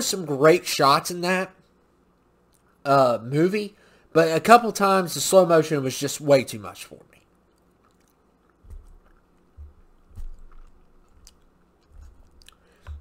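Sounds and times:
faint steady hum: 0.0 - 13.0
soft low thumps: 8.6 - 13.0.

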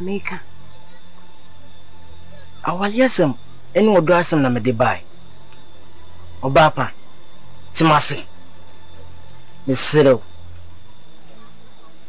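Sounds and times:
crickets chirping: 0.0 - 12.0
person speaking: 2.3 - 5.0, 6.4 - 7.0, 7.7 - 8.3, 9.7 - 10.2.

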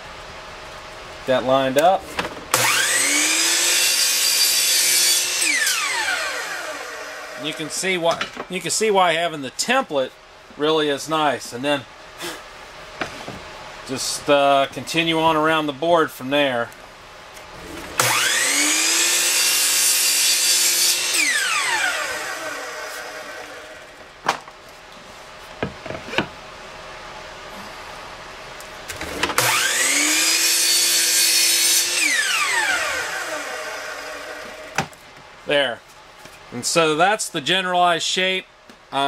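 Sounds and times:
miter saw cutting plywood: 2.5 - 8.0, 17.6 - 24.0, 29.0 - 34.9.

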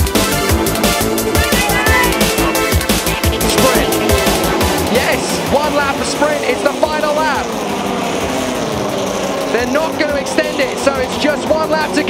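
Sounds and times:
electronic music with fast drum beat: 0.0 - 5.5
racing car engines: 0.0 - 12.0
commentator talking: 1.4 - 7.7, 9.5 - 12.0.

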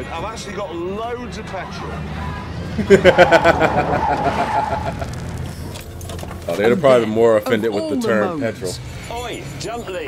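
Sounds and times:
car engine running: 0.0 - 10.0
man laughing: 2.7 - 5.2.

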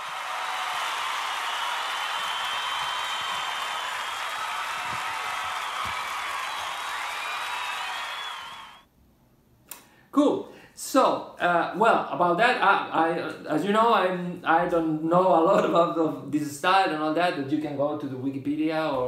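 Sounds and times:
crowd cheering and applauding: 0.0 - 8.8
whistles: 0.8 - 8.8.

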